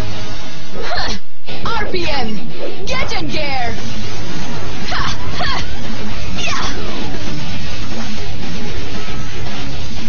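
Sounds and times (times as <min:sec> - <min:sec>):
music: 0:00.0 - 0:10.0
sci-fi whooshing and zapping effects: 0:01.5 - 0:10.0.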